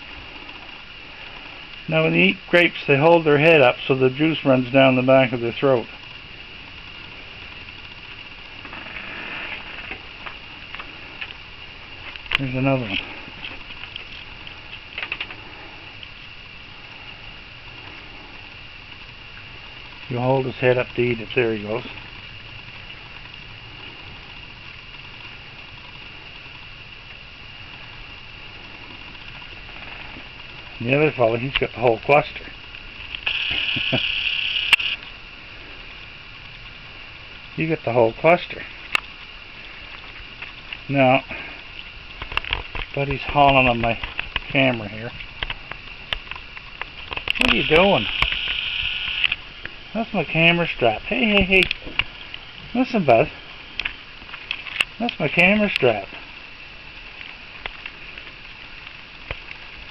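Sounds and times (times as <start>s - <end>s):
night insects chorus: 0.0s - 59.9s
camera zoom motor whirring: 33.2s - 35.0s, 47.4s - 49.4s.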